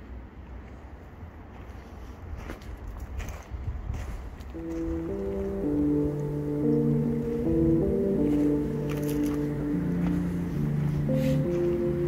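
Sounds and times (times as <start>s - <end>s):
low wind rumble: 0.0s - 12.0s
footsteps on gravel: 1.5s - 6.0s, 7.8s - 12.0s.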